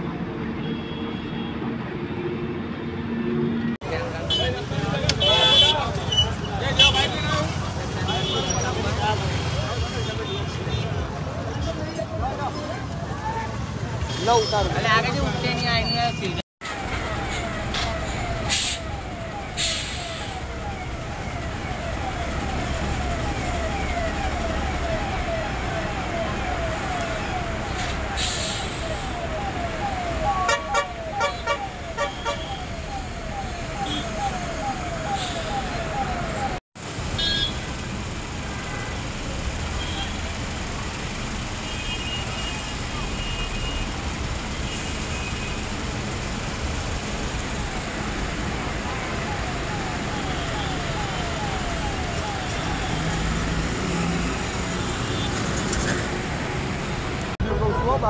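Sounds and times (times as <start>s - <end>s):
traffic noise: 0.0s - 58.0s
fire scene noise: 3.7s - 58.0s
fire engine siren yelping: 16.6s - 36.6s, 47.3s - 57.3s
horn blasts: 30.4s - 32.6s.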